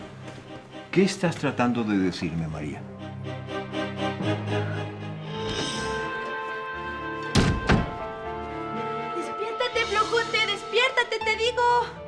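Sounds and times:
background music: 0.0s - 12.0s
wooden door thudding shut: 7.3s - 8.0s.

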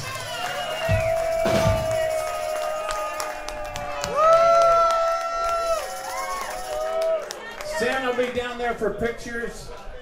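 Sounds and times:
audience cheering and clapping: 0.0s - 8.6s.

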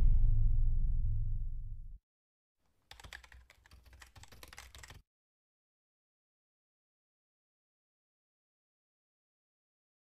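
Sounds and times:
keyboard key clicks: 2.9s - 5.0s.

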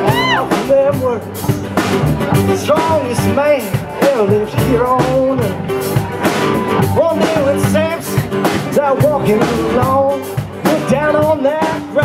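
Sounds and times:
live rock band playing: 0.0s - 12.0s
steady low bass notes: 0.0s - 12.0s.

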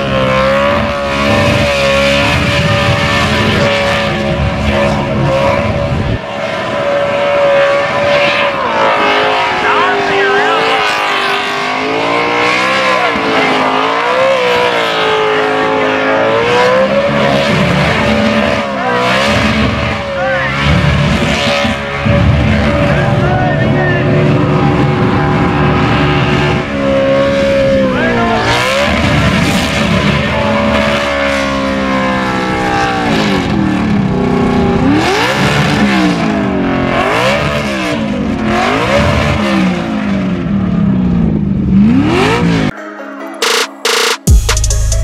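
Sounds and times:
car engine revving: 0.0s - 42.8s
electronic music with heavy beat: 42.7s - 45.0s.

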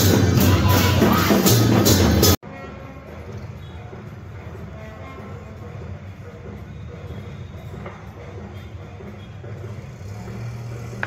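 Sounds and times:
low rumble of city traffic: 0.0s - 11.0s.

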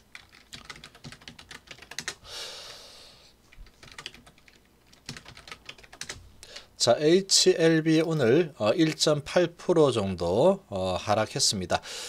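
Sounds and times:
computer keyboard typing: 0.0s - 2.2s, 3.5s - 6.2s.

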